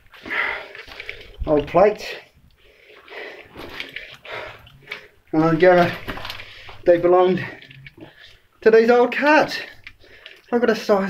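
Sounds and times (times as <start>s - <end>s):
person breathing: 0.1s - 1.4s, 2.6s - 5.3s, 6.2s - 8.6s, 9.6s - 10.5s.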